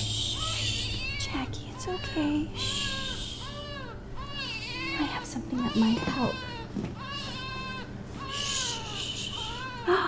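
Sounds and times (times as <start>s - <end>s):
baby crying: 0.0s - 10.0s.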